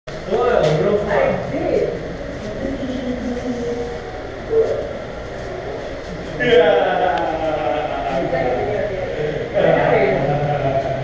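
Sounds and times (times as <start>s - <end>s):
steady low rumble: 0.1s - 11.0s.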